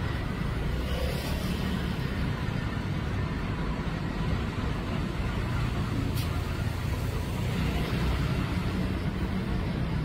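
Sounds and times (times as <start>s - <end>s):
low road rumble: 0.0s - 10.0s.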